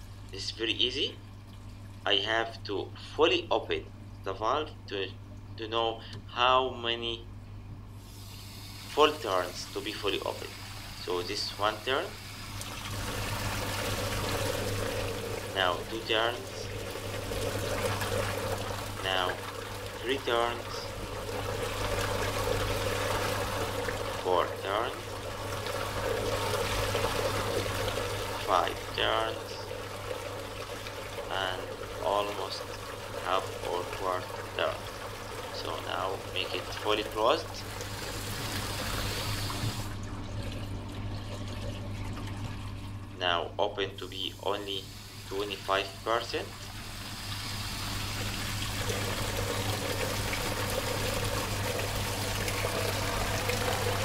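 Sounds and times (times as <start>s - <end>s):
steady low hum: 0.0s - 54.0s
water rushing through pipes: 8.0s - 43.4s, 44.0s - 54.0s.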